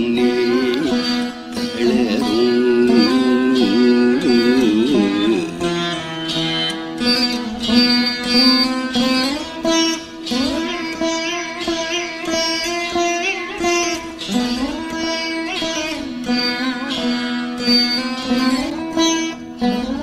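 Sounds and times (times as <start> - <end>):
plucked veena: 0.0 - 20.0.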